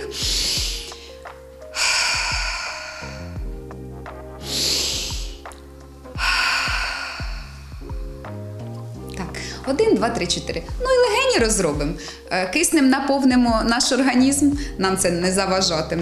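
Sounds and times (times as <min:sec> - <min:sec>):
woman breathing: 0:00.0 - 0:03.8, 0:04.4 - 0:08.4, 0:09.4 - 0:09.7, 0:12.0 - 0:12.3
background music: 0:00.0 - 0:16.0.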